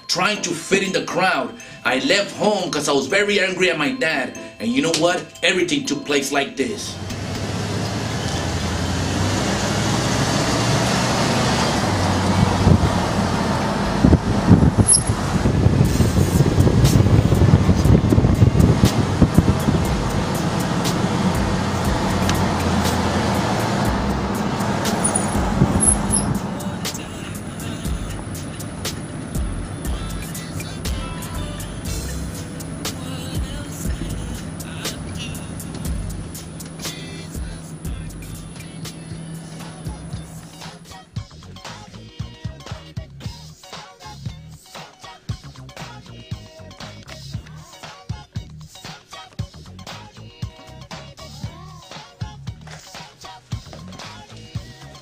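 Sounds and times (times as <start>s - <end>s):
car road and wind noise: 7.0s - 40.9s.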